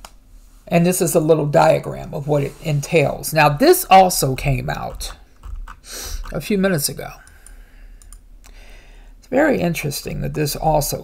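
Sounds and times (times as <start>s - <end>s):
low steady hiss: 0.0s - 11.0s
computer clicks: 7.2s - 8.2s.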